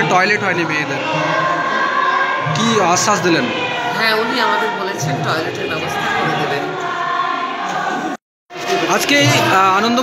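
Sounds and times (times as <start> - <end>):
group of voices singing: 0.0 - 10.0.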